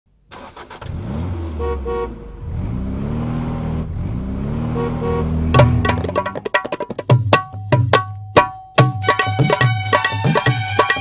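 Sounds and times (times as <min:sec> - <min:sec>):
truck engine revving: 0:00.5 - 0:06.3
truck horn toots: 0:01.5 - 0:02.3, 0:04.6 - 0:05.9
drum beat: 0:05.5 - 0:11.0.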